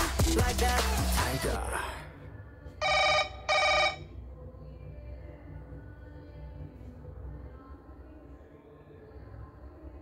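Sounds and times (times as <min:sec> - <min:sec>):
electronic ringing tones: 0:02.8 - 0:04.1.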